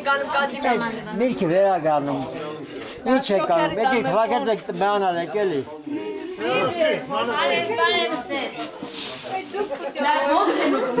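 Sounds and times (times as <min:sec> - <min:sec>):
people talking: 0:02.1 - 0:11.0.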